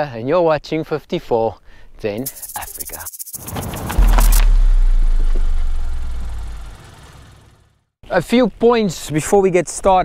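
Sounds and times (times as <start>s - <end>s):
hiss: 2.2s - 4.4s
deep low rumble: 3.5s - 7.1s.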